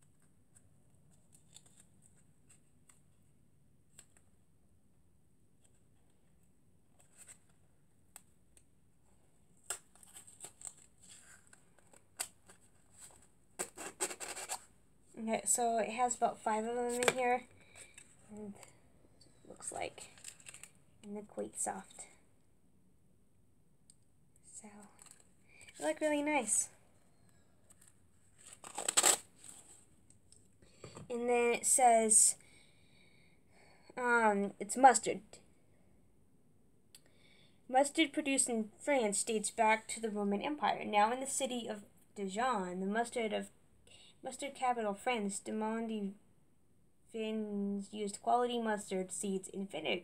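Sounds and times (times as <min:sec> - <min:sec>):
packaging rustling: 0:09.6 - 0:14.7, 0:20.0 - 0:20.8, 0:27.7 - 0:29.8.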